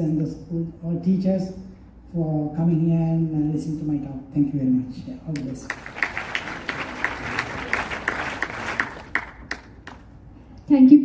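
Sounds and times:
audience applauding: 5.4 - 10.1.

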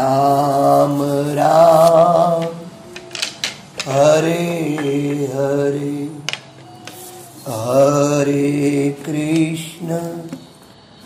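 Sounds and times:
man chanting: 0.0 - 3.0, 3.8 - 6.4, 7.0 - 10.5.

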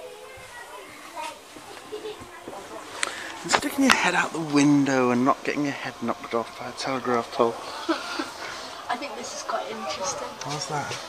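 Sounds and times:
child's voice: 0.0 - 2.5
quiet indistinct talking: 0.0 - 11.0.

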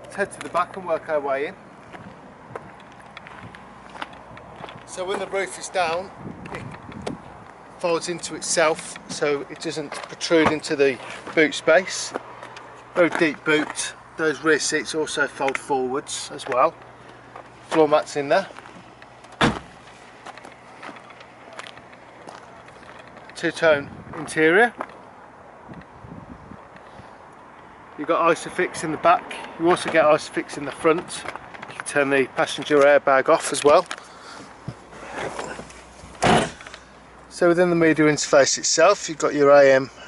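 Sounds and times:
footsteps on tarmac: 0.0 - 26.0, 26.6 - 37.3
faint outdoor background: 0.0 - 40.0
car boot lid thud: 19.4 - 19.8, 36.2 - 36.6.

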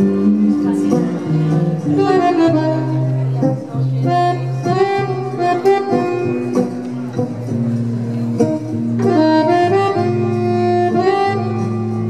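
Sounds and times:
accordion melody: 0.0 - 12.0
bass: 0.0 - 12.0
guitar: 0.0 - 12.0.

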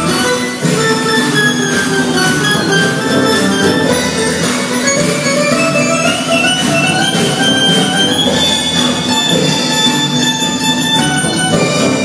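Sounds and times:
live band playing: 0.0 - 12.0
piercing high squeal: 0.0 - 12.0.

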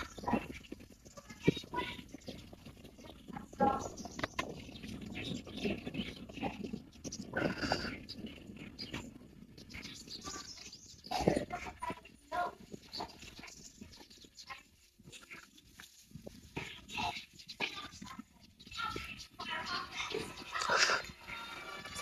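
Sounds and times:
faint outdoor background: 0.0 - 22.0
animal calls: 16.6 - 21.4.

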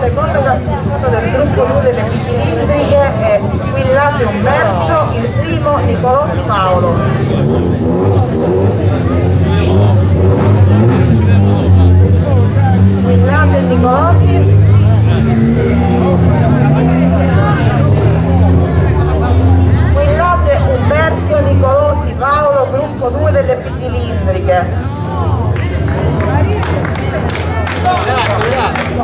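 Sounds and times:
people talking: 0.0 - 29.0.

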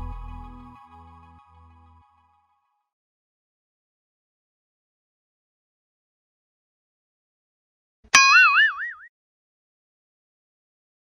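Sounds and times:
cartoon boing twang: 8.1 - 9.1.

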